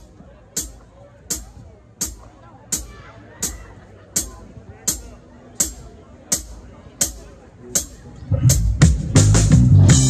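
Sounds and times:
drumstick count-in ticks: 0.6 - 3.6
rock band playing: 8.5 - 10.0.

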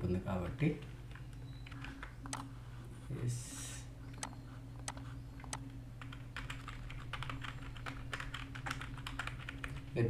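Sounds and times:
steady low hum: 0.0 - 10.0
computer clicks: 0.8 - 2.5, 4.1 - 9.8.

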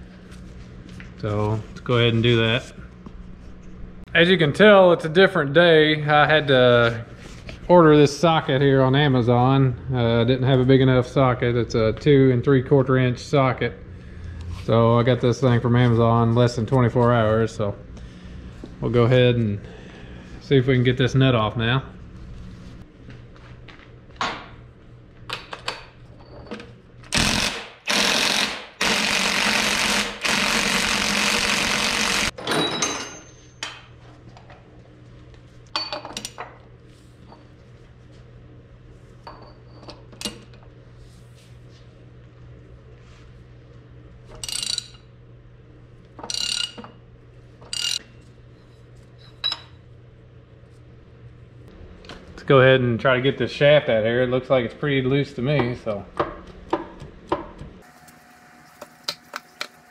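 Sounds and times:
steady low hum: 0.0 - 32.4, 33.2 - 59.9
impact wrench hammering: 27.1 - 32.4.

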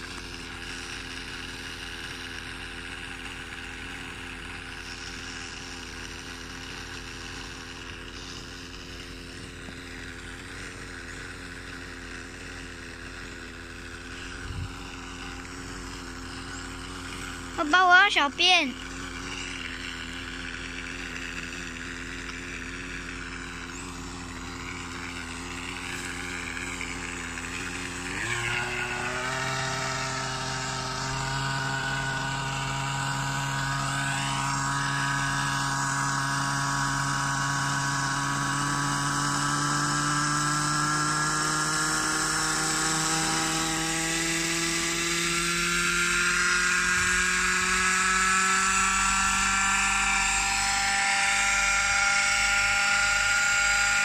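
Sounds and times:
model helicopter engine running: 0.0 - 54.0.

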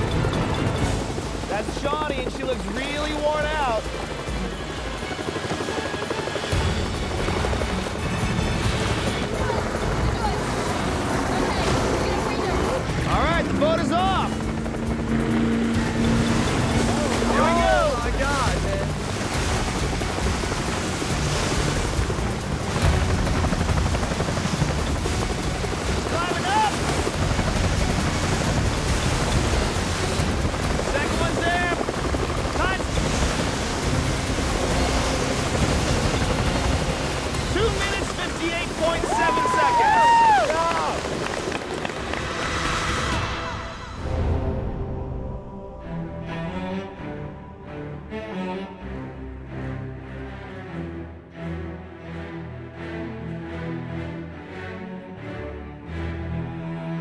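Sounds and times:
water and wind noise: 0.0 - 49.8
speedboat running: 0.0 - 50.1
background music: 0.0 - 57.0
women whooping and cheering: 39.0 - 41.0.

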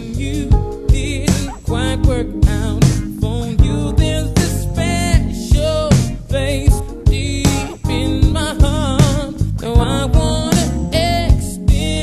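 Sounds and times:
slow r and b ballad: 0.0 - 12.0.

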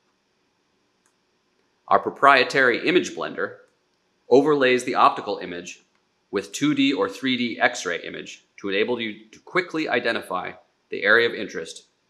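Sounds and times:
faint steady hum: 0.0 - 12.0
narrator speaking: 1.9 - 3.5, 4.3 - 5.7, 6.4 - 11.8.

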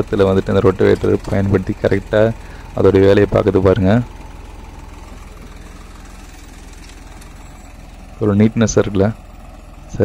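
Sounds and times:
diesel engine under load: 0.0 - 10.0.

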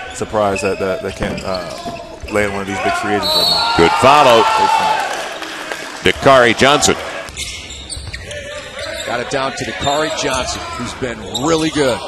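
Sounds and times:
ball bouncing on hardwood court: 7.3 - 8.6.

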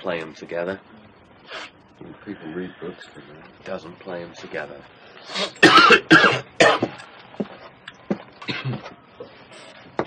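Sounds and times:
man coughing: 5.5 - 7.0, 8.4 - 8.9.

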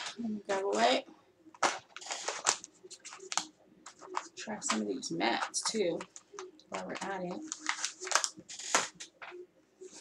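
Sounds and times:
crinkling plastic packet: 1.6 - 4.8, 5.4 - 9.3.

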